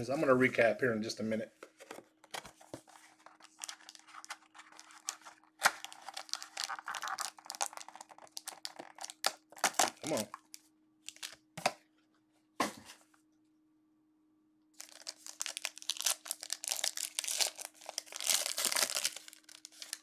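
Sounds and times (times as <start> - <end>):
faint steady hum: 0.0 - 20.0
plastic wrapping crinkling: 2.6 - 11.4, 14.8 - 20.0.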